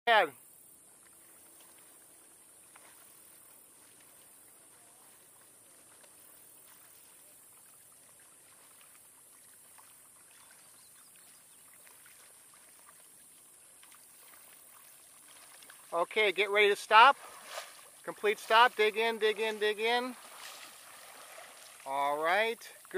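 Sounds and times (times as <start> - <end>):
paddle strokes in water: 0.9 - 22.9
steady high hiss: 15.9 - 22.9.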